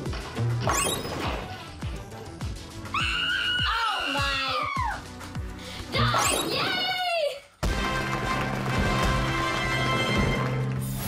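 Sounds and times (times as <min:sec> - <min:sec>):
girl squealing: 0:02.9 - 0:05.0.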